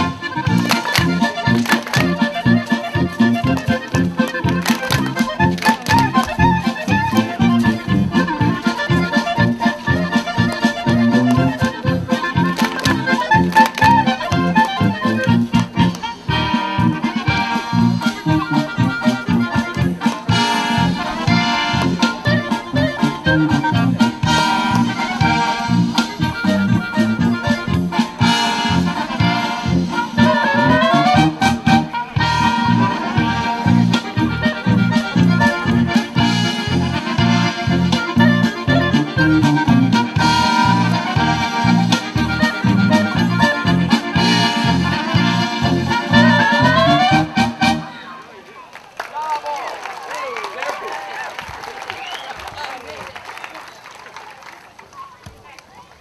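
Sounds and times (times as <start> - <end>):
accordion and brass dance music: 0.0 - 48.3.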